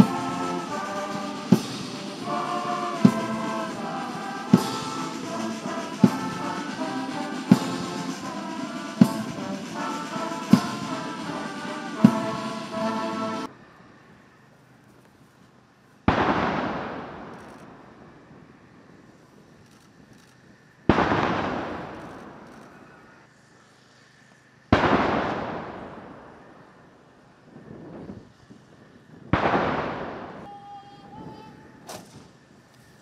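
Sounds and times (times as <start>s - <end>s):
artillery gun salute reports: 0.0s - 13.5s, 30.4s - 32.2s.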